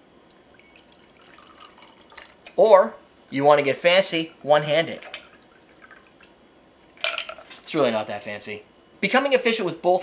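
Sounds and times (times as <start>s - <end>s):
liquid trickling and dripping: 0.3s - 2.5s, 5.0s - 6.4s.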